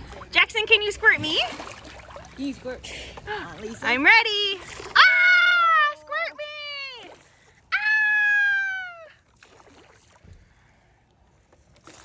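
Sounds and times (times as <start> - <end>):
water splashing and trickling: 0.0 - 12.0.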